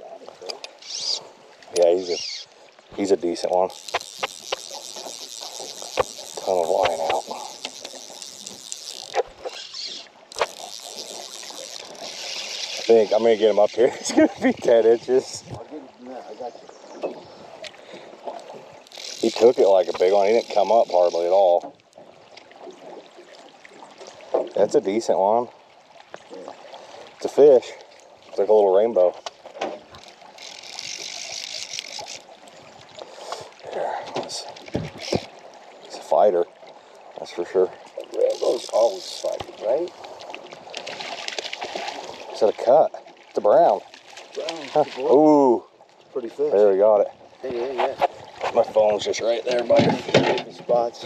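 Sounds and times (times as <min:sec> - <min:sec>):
river water lapping around boat: 0:00.0 - 0:51.0
faint clicks: 0:00.2 - 0:02.5, 0:03.4 - 0:13.0
fly reel drag ratcheting: 0:00.4 - 0:02.6, 0:03.4 - 0:13.8, 0:18.8 - 0:21.5, 0:30.0 - 0:32.4, 0:38.2 - 0:39.4.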